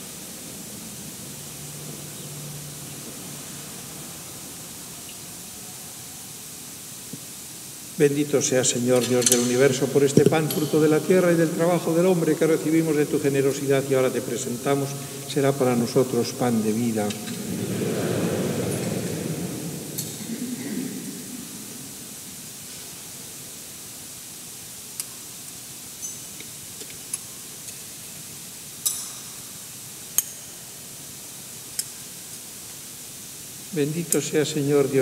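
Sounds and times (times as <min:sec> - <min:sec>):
congregation murmuring: 0:08.0 - 0:23.2, 0:33.7 - 0:35.0.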